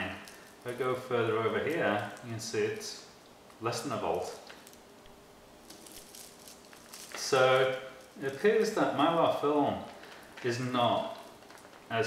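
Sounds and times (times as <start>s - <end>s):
foil blanket crinkling and rustling: 0.0s - 12.0s.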